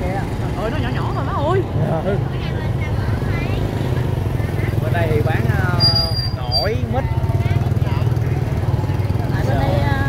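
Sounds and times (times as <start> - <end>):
market voices: 0.0 - 10.0.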